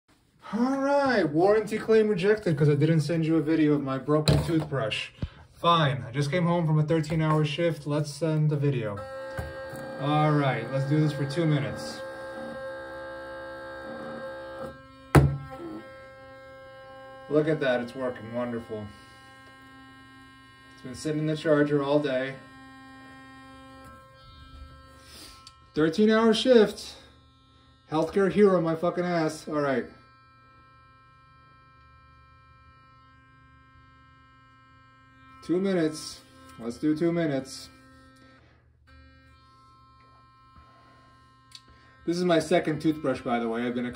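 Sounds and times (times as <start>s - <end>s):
electric toothbrush buzzing: 8.9s - 43.9s.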